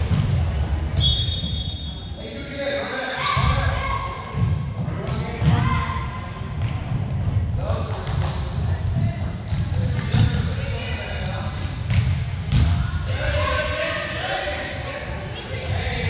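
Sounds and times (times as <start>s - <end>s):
voices in a gym: 0.0s - 16.0s
sneaker squeaks: 1.0s - 2.1s, 7.5s - 13.1s.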